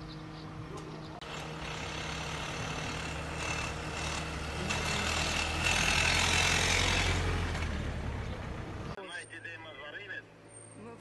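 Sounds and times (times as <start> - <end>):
vehicle engine running: 0.0 - 9.0.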